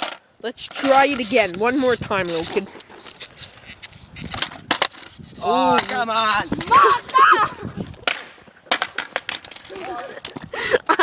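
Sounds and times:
skateboard knocking on asphalt: 7.9 - 10.5
skateboard sharp clacks: 8.0 - 10.5.

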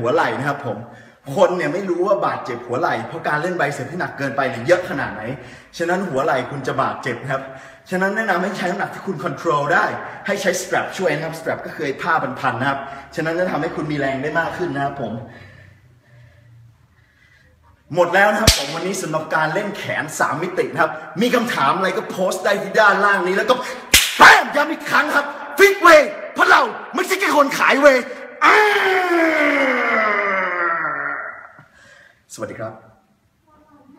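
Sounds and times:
man speaking: 0.0 - 15.3, 17.9 - 28.3
man shouting: 24.1 - 24.8, 25.6 - 31.6.

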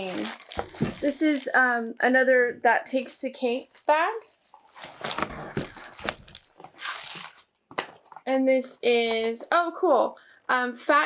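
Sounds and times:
packaging crinkling: 0.0 - 1.2, 4.4 - 8.2
tote bag rustling: 0.0 - 1.2, 4.1 - 7.4.

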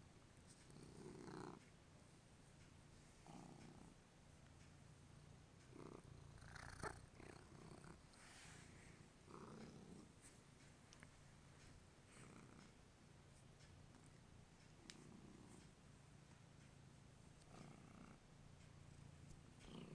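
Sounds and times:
cat purring: 0.4 - 1.7, 2.9 - 19.9.

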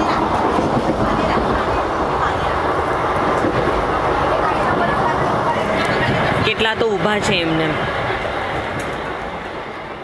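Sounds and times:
train rumbling and rattling: 0.0 - 10.0.

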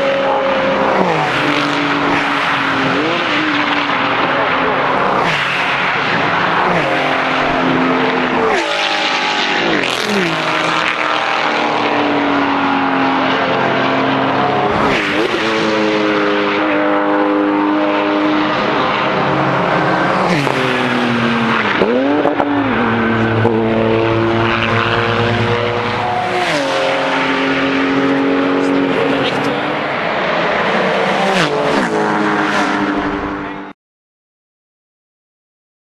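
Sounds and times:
race car engines: 0.0 - 33.8.

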